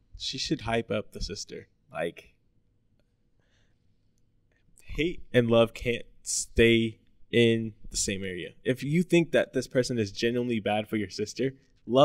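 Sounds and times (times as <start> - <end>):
person speaking: 0.0 - 2.4, 4.6 - 12.0.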